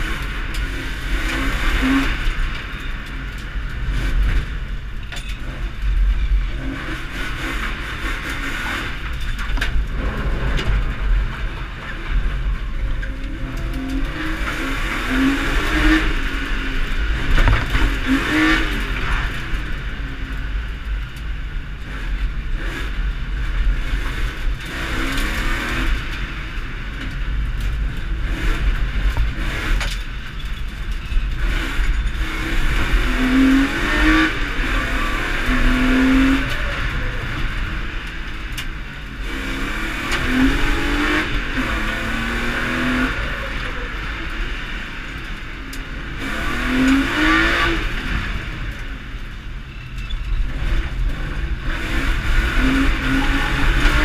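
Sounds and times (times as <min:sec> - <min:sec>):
car engine revving: 0:00.0 - 0:54.0
road noise: 0:00.0 - 0:54.0.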